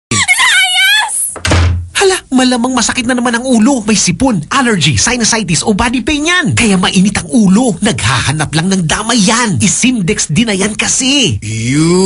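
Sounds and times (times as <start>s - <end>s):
heavy door thunk: 1.4s - 1.9s.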